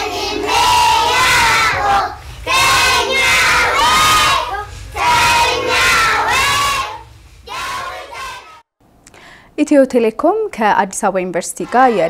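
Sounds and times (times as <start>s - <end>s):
children speaking in unison: 0.0s - 8.4s.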